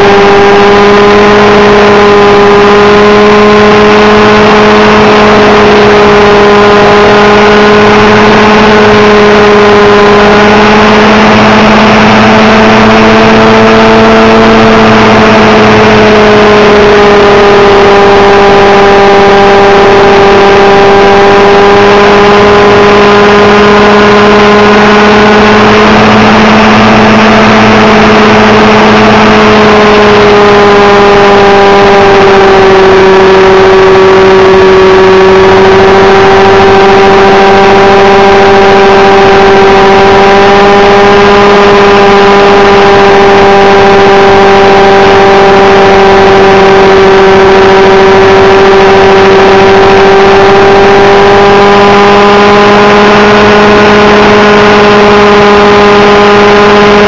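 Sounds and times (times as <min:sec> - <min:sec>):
model helicopter engine and rotor: 0:00.0 - 0:57.0.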